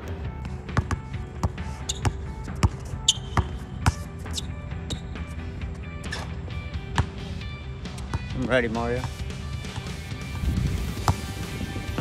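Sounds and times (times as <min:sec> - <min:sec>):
background music: 0:00.0 - 0:12.0
basketball bouncing on hard court: 0:00.4 - 0:04.1, 0:06.9 - 0:07.2, 0:11.0 - 0:11.3.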